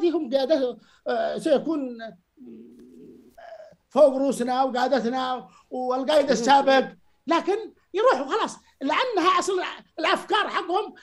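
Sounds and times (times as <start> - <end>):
man humming hesitantly: 2.4 - 3.8.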